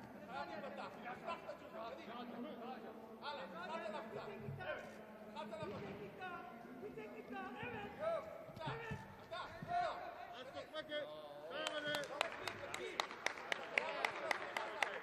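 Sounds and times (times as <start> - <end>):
sharp irregular claps: 11.6 - 15.0.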